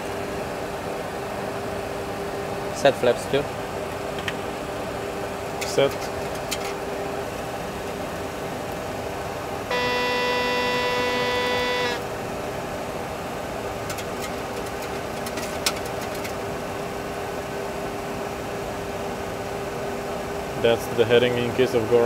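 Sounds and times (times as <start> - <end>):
simulator hum: 9.6 - 13.0
electronic alert tone: 9.7 - 12.0.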